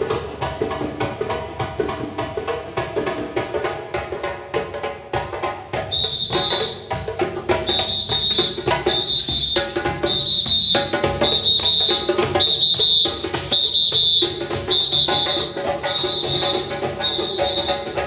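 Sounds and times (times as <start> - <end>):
hand drums driving rhythm: 0.0 - 18.0
high whistle blasts: 5.9 - 18.0.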